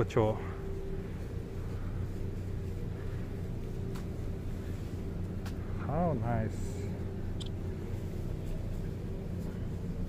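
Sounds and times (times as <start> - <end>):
city background hum: 0.0 - 10.0
constant droning tone: 0.0 - 10.0.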